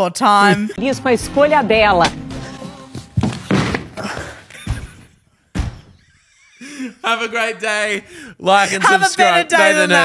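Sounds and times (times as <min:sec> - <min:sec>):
background music: 0:00.3 - 0:04.0
body thudding on floor: 0:02.9 - 0:05.0.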